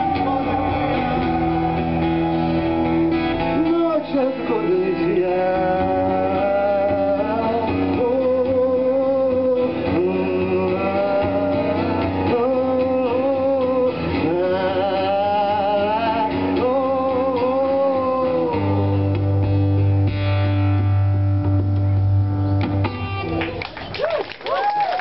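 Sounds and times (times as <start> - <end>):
man singing: 0.0 - 19.4
acoustic guitar: 0.0 - 23.8.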